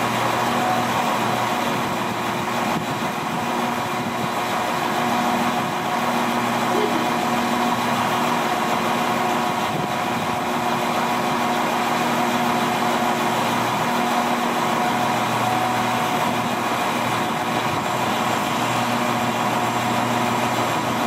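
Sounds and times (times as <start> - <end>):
diesel train engines idling: 0.0 - 21.0.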